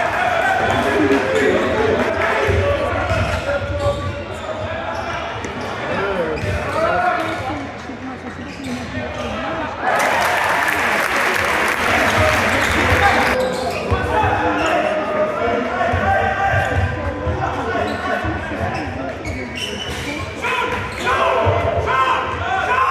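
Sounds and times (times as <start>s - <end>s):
crowd noise: 0.0s - 22.9s
spectators' voices: 0.0s - 22.9s.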